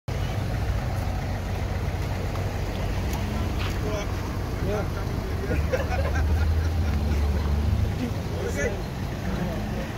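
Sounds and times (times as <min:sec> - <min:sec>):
vehicle engines idling: 0:00.1 - 0:09.9
faint voices: 0:07.0 - 0:09.9.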